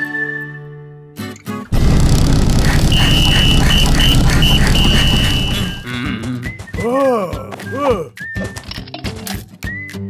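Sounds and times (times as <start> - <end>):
high tone: 2.6 - 5.9.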